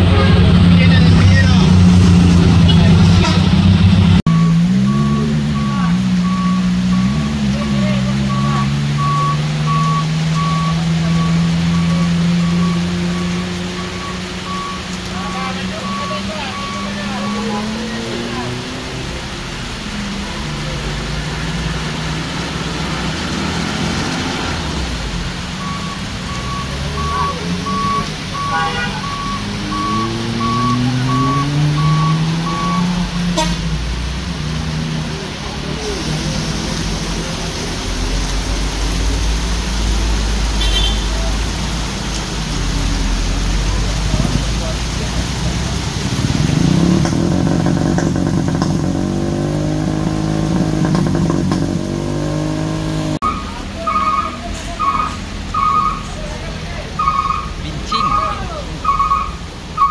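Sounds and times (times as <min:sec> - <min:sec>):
truck engine labouring uphill: 0:00.0 - 0:59.9
reversing alarm beeps: 0:04.3 - 0:07.4, 0:08.2 - 0:14.8, 0:15.8 - 0:17.5, 0:25.6 - 0:32.9.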